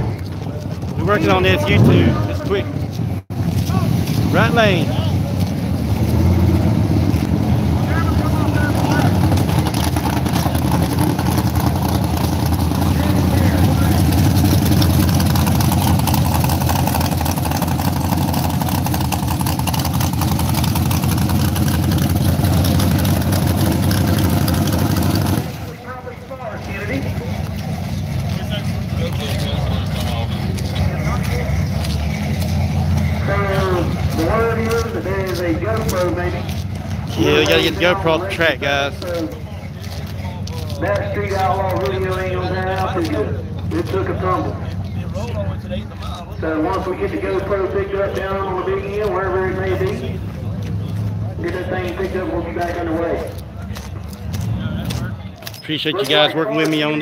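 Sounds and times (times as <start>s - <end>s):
people talking: 0.0s - 2.9s, 3.6s - 5.6s, 7.8s - 9.8s, 12.7s - 14.4s, 25.6s - 27.6s, 28.2s - 32.0s, 33.0s - 57.0s
drag car engine rumbling: 0.0s - 57.0s.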